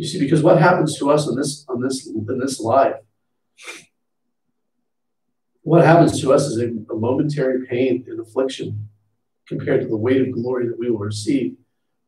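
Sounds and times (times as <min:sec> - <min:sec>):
man speaking: 0:00.0 - 0:03.8, 0:05.6 - 0:08.9, 0:09.5 - 0:11.6
man's sharp breath: 0:03.6 - 0:03.9.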